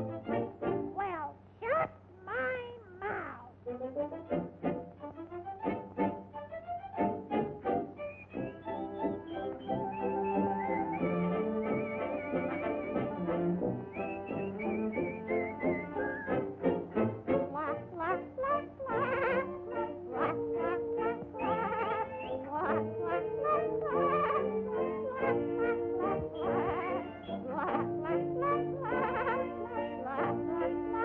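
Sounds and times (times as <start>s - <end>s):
brass accompaniment: 0.0s - 0.9s, 3.6s - 31.0s
whistled melody with vibrato: 6.5s - 17.2s, 18.4s - 31.0s.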